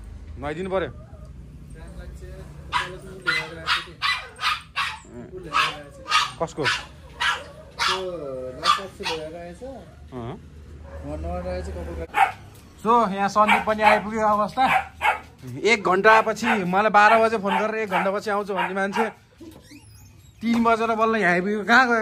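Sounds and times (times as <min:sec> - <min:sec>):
dog barking: 0:02.7 - 0:09.4, 0:10.8 - 0:11.2, 0:12.1 - 0:12.5, 0:13.4 - 0:15.4, 0:16.4 - 0:19.2
dog wavering calls: 0:02.7 - 0:10.1, 0:16.4 - 0:20.4.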